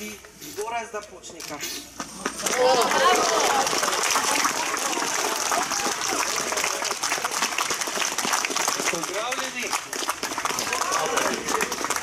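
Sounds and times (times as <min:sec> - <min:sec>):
crowd clapping: 0:02.0 - 0:12.0.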